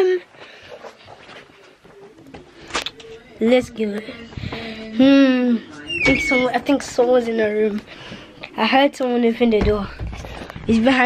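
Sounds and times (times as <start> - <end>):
boy speaking: 3.4 - 7.8, 8.6 - 10.0, 10.7 - 11.0.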